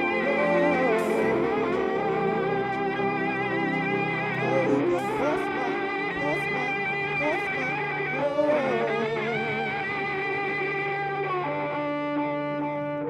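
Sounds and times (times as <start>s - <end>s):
synth low drone: 0.0s - 12.0s
electric cello sustained notes: 0.0s - 13.0s.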